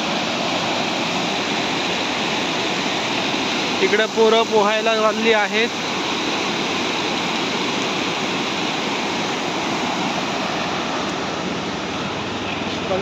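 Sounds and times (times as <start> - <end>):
river rushing over rapids: 0.0 - 13.0.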